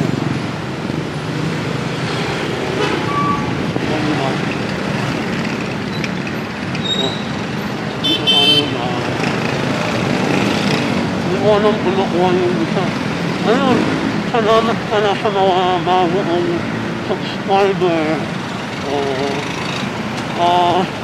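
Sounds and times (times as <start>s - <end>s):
motorcycles passing: 0.0s - 21.0s
street traffic: 0.0s - 21.0s.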